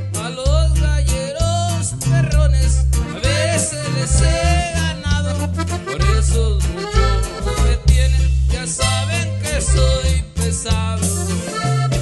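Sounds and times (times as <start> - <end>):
accordion melody: 0.0 - 12.0
bass notes: 0.0 - 12.0
guitar rhythm: 0.0 - 12.0.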